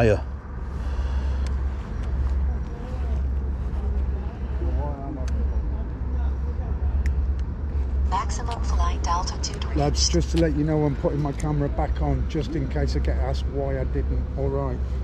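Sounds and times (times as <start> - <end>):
low outdoor rumble: 0.0 - 15.0
people talking: 2.4 - 7.1, 8.1 - 14.8.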